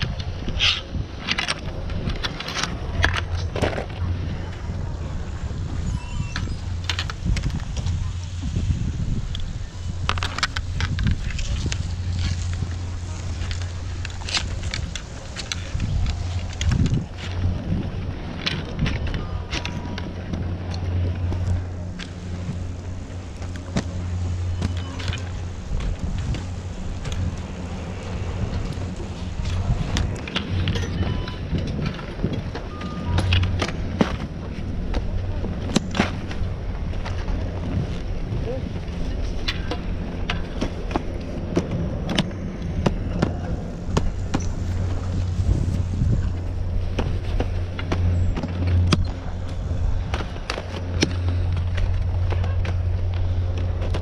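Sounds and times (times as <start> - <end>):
low machine hum: 0.0 - 54.0
skis and poles clacking: 0.0 - 54.0.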